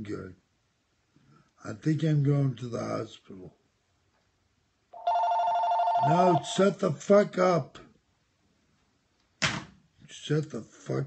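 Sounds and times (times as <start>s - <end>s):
telephone ringing: 5.0s - 6.6s.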